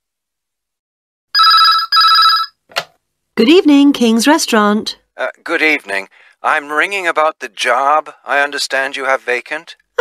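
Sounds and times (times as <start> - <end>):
telephone ringing: 1.4 - 2.6.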